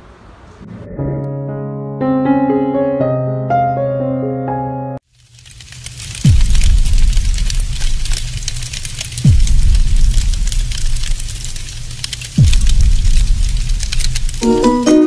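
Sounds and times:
low drone: 0.6s - 2.3s
fire-like crackle: 5.0s - 15.0s
deep booming hits: 6.2s - 8.5s, 9.2s - 11.7s, 12.4s - 14.4s.

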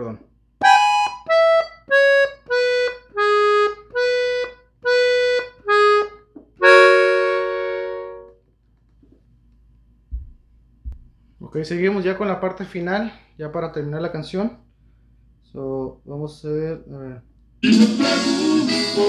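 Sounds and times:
button accordion playing: 0.6s - 8.4s, 17.6s - 19.0s
soft low thumps: 10.0s - 11.2s.

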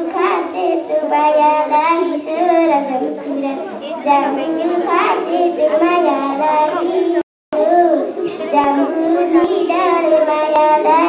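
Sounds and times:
girl singing into microphone: 5.0s - 11.0s.

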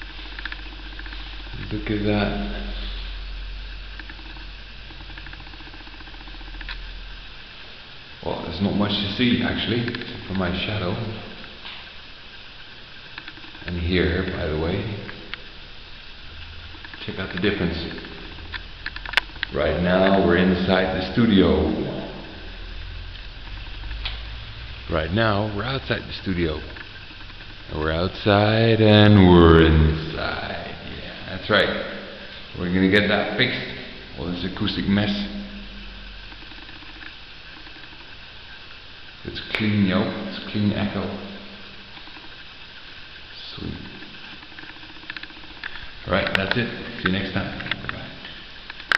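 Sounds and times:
room noise with faint hum: 0.0s - 48.9s
man's voice echoing: 27.8s - 31.8s.

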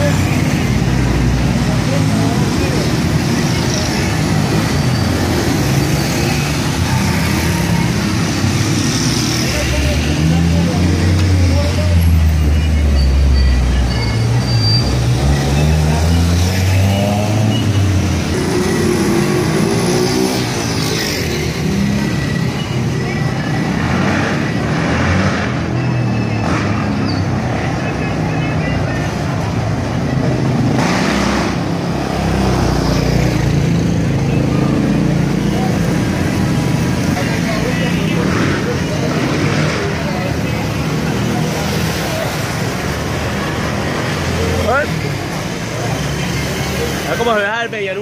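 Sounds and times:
chatter of many people: 0.0s - 48.0s
motorcycles and cars passing: 0.0s - 48.0s.

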